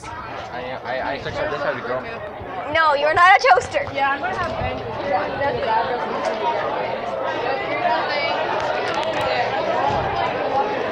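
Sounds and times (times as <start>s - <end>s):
indistinct chatter of voices: 0.0s - 10.9s.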